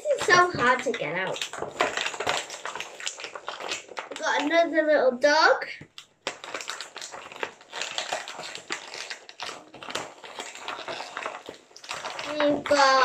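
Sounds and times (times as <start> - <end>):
plastic packaging crinkling: 0.0 - 4.8, 5.8 - 13.0.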